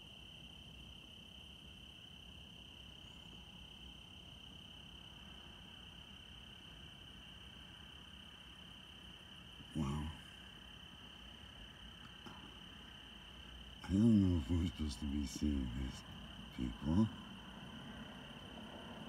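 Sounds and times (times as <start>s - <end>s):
faint cricket trill: 0.0s - 19.0s
man saying wow: 9.7s - 10.3s, 13.8s - 17.2s.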